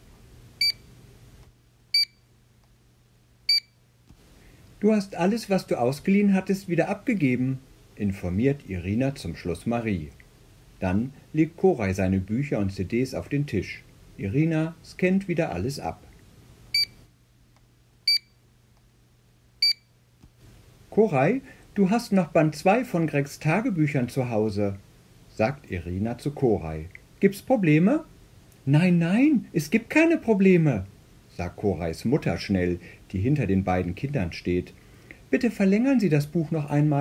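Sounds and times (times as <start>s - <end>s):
barcode scanner beeps: 0.6s - 0.8s, 2.0s - 2.2s, 3.5s - 3.7s, 18.1s - 18.3s, 19.6s - 19.8s.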